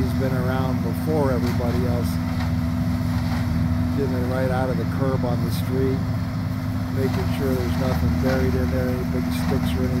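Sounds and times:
leaf vacuum truck droning: 0.0s - 10.0s.

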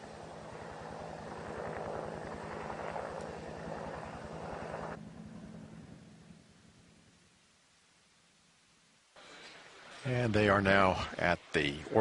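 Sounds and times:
rushing outdoor noise: 0.0s - 7.2s, 9.2s - 12.0s
low hum: 0.0s - 12.0s.

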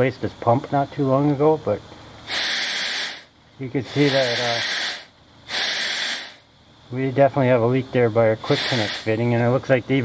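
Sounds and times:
compressed air hissing: 2.2s - 6.6s, 8.2s - 9.5s.

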